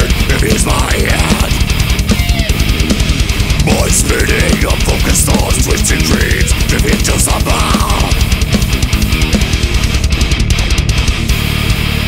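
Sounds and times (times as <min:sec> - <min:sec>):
fast drumming: 0:00.0 - 0:11.8
distorted electric guitars: 0:00.0 - 0:12.0.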